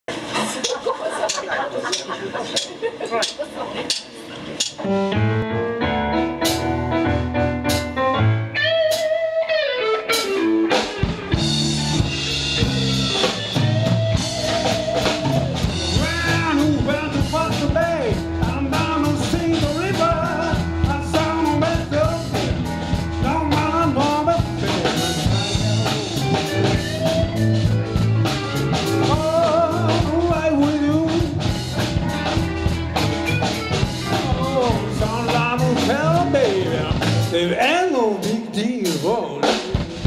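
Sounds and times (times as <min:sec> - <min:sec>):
live blues band: 0:00.1 - 0:40.0
drum kit beat: 0:00.6 - 0:40.0
keyboard: 0:00.6 - 0:40.0
bass guitar: 0:04.0 - 0:40.0
electric guitar: 0:04.8 - 0:37.4.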